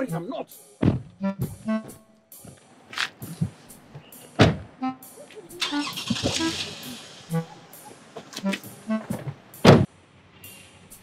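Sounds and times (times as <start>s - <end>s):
steady car noise: 0.0s - 11.0s.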